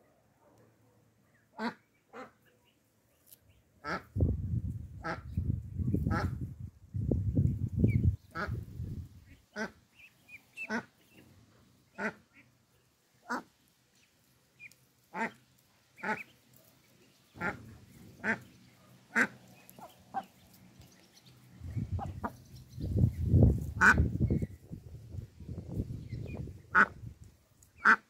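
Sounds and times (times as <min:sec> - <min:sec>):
duck quacking: 0:01.6 - 0:02.5, 0:03.8 - 0:04.1, 0:09.3 - 0:11.1, 0:11.9 - 0:12.5, 0:13.2 - 0:13.5, 0:15.1 - 0:15.4, 0:16.0 - 0:16.3, 0:17.4 - 0:18.5, 0:19.1 - 0:20.3, 0:23.8 - 0:24.1, 0:26.7 - 0:27.0, 0:27.8 - 0:28.0
ducklings peeping: 0:07.5 - 0:27.0.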